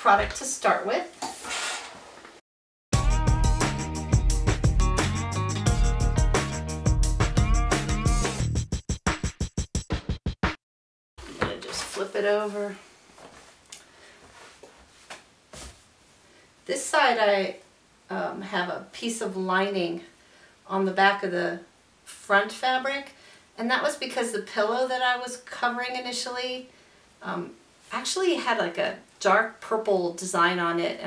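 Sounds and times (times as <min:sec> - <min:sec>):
music: 0:02.9 - 0:10.6
fabric rustling: 0:11.2 - 0:16.2.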